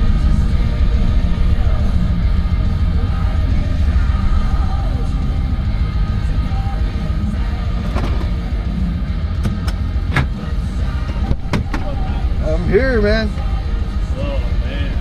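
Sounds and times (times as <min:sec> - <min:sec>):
engine idling rumble: 0:00.0 - 0:15.0
car door opening: 0:07.8 - 0:08.4, 0:09.4 - 0:10.5.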